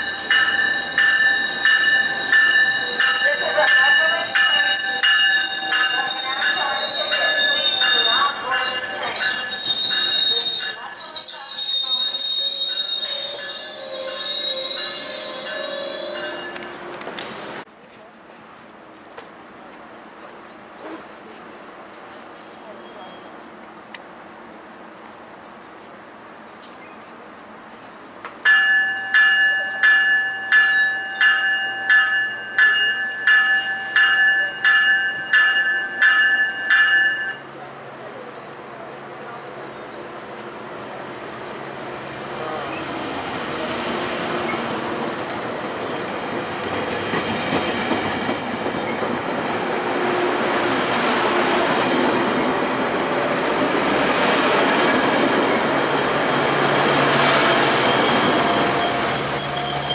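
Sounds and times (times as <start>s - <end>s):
train bell ringing: 0.0s - 16.9s, 28.4s - 38.3s
train rolling rumble: 0.0s - 22.3s, 23.0s - 59.9s
wheel and brake squeal: 4.2s - 16.8s, 37.3s - 43.0s, 43.6s - 59.9s.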